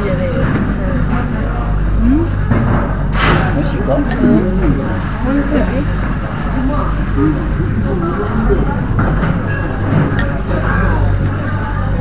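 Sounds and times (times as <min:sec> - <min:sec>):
indistinct background voices: 0:00.0 - 0:12.0
steady low hum: 0:00.0 - 0:12.0.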